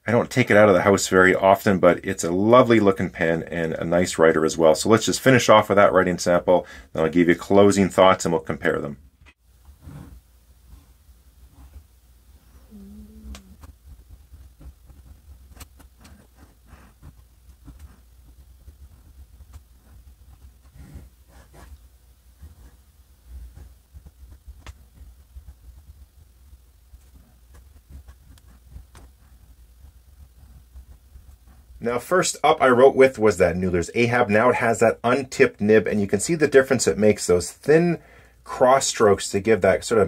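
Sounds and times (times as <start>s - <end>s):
fountain pen scratching on paper: 13.6s - 26.2s, 26.9s - 31.8s.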